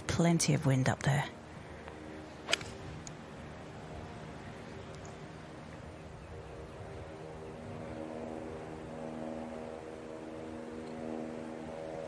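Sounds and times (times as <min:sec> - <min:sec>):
faint outdoor background: 0:00.0 - 0:12.0
golf club striking ball: 0:02.4 - 0:03.1.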